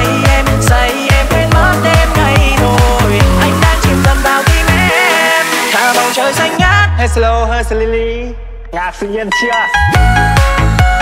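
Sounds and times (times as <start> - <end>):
electronic dance music: 0.0 - 11.0
fast bass beat: 0.0 - 11.0.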